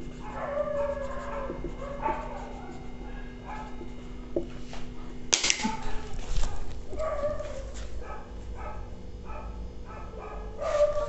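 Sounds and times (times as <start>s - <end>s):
marker writing on whiteboard: 0.0s - 4.7s.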